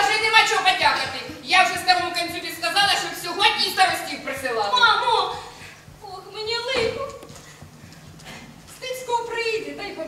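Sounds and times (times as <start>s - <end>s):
boot footsteps on stage floor: 5.7s - 8.8s.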